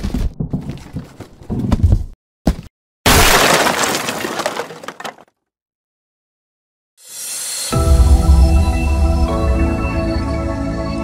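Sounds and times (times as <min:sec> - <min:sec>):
crackling scattering debris: 0:03.1 - 0:05.2
crate smashing apart: 0:03.1 - 0:05.3.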